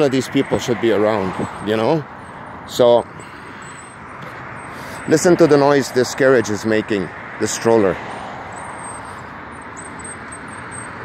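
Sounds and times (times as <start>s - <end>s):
road traffic rushing hiss: 0.0s - 11.0s.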